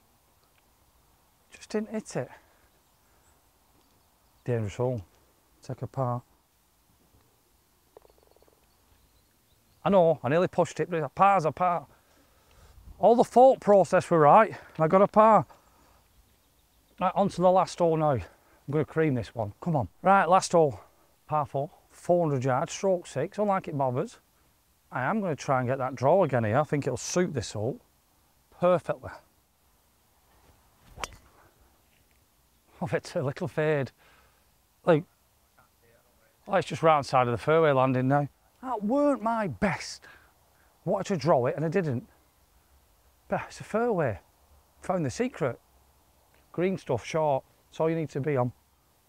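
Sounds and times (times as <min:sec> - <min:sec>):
man speaking: 0:01.5 - 0:02.4, 0:04.5 - 0:06.3, 0:34.8 - 0:40.1
golf ball rattling: 0:07.9 - 0:08.6, 0:30.8 - 0:31.3
golf club swing swish: 0:30.3 - 0:31.4
putter striking golf ball: 0:30.9 - 0:31.3.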